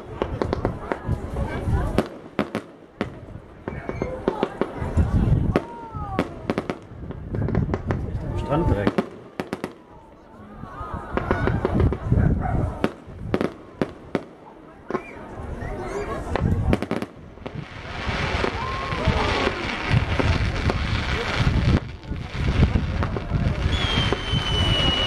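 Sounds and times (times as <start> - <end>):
fireworks bangs and pops: 0.0 - 10.3, 11.1 - 15.3, 16.2 - 25.0
fireworks crackling hiss: 16.2 - 25.0.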